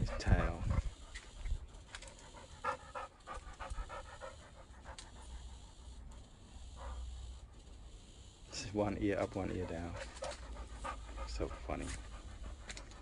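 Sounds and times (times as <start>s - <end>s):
dog panting: 0.0s - 7.6s, 8.6s - 13.0s.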